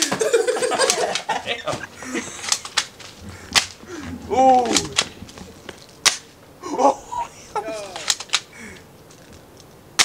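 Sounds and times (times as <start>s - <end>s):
sharp crack: 2.2s - 6.5s, 7.9s - 10.0s.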